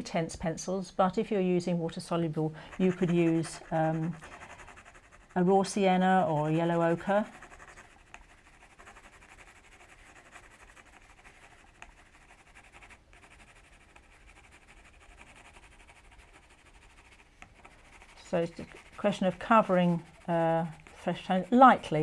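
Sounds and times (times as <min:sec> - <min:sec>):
pencil scratching on paper: 0:01.5 - 0:22.0.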